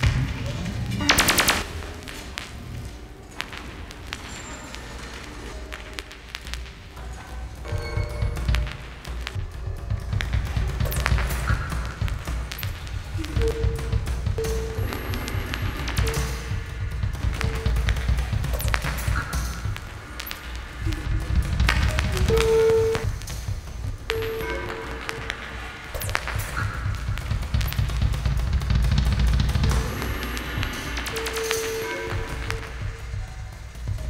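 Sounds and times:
electronic music with deep bass: 5.8 - 34.0.

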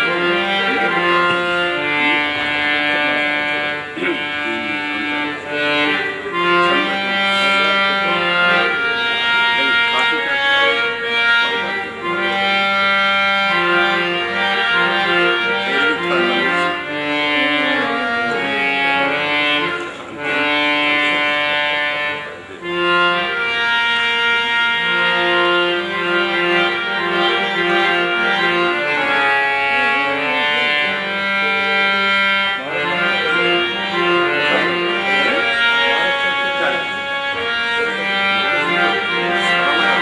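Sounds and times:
harmonium melody: 0.0 - 40.0.

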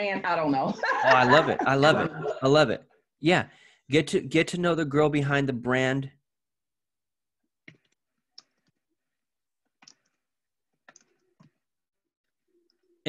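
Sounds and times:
faint keyboard clicks: 9.8 - 10.2, 10.8 - 11.6.

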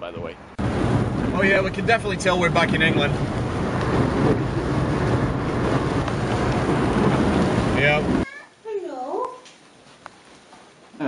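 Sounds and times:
low engine rumble: 0.6 - 8.2
tyre and wind noise: 0.6 - 8.4.

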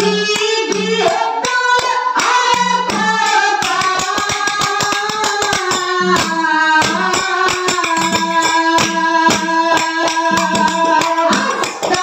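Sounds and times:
woman singing into a microphone: 0.0 - 12.0
drum strokes: 0.1 - 12.0
small brass hand cymbals: 2.5 - 12.0.

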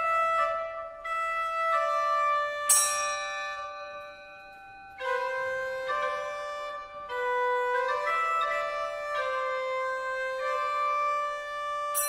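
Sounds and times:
struck bell ringing: 2.7 - 4.2.

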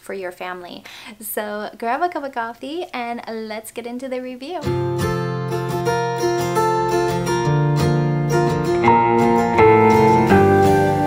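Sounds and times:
acoustic guitar music: 4.6 - 11.0.

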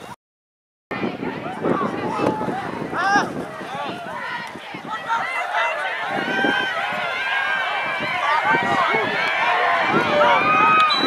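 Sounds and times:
crowd yelling and cheering: 0.9 - 11.0.

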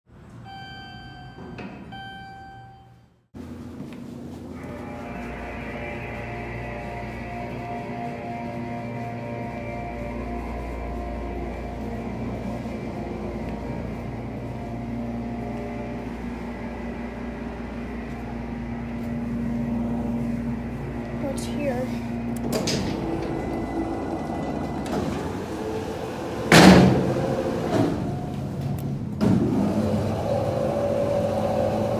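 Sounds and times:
intro jingle tones: 0.4 - 3.2
steady hum: 0.4 - 31.9
low rumble: 4.3 - 29.2.

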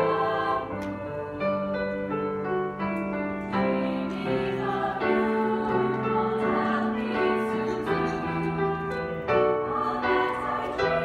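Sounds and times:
girls' choir singing in harmony: 0.0 - 11.0
piano accompaniment: 0.0 - 11.0.

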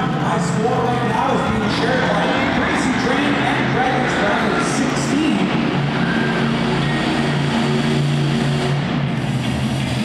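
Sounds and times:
monster truck engine running: 0.0 - 10.0.

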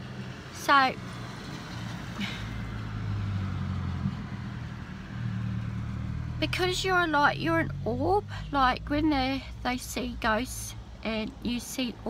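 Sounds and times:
car engine hum from inside: 0.0 - 12.0.

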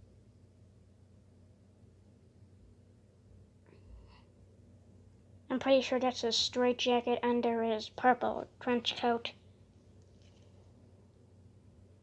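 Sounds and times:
faint whispered breath: 3.6 - 4.4.

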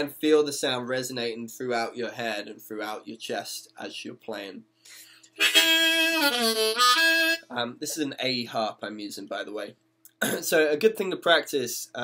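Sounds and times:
harmonica sustained bending note: 5.4 - 7.5.

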